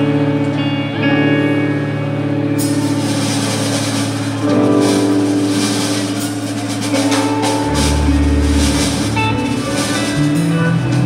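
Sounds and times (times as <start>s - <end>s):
rock band droning chords: 0.0s - 11.0s.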